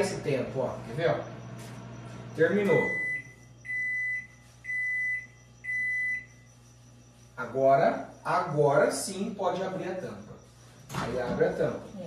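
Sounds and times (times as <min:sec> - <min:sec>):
microwave oven beeps: 0:00.0 - 0:09.0.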